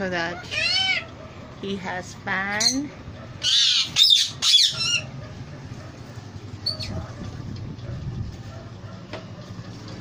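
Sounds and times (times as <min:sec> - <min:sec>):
parakeet harsh squawks: 0:00.2 - 0:01.2, 0:03.4 - 0:05.2.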